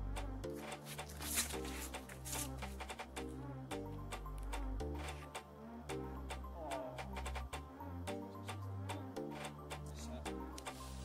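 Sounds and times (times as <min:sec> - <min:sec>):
bass line: 0:00.0 - 0:10.6
sharp percussion ticks: 0:00.0 - 0:10.8.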